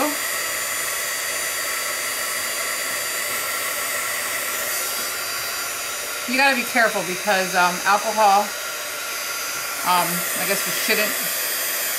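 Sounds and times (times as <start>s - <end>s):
heat tool blowing hot air: 0.0s - 11.9s.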